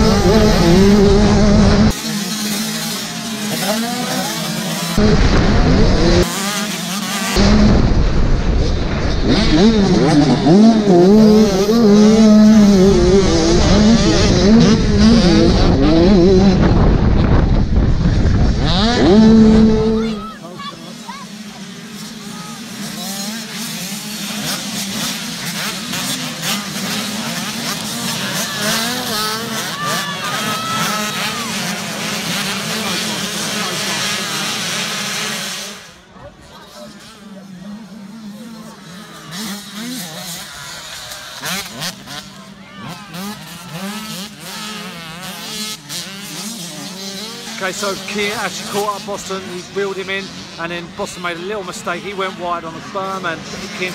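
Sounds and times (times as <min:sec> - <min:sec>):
distant motocross bikes racing: 0:00.0 - 0:53.9
motocross bike revving close: 0:00.0 - 0:53.9.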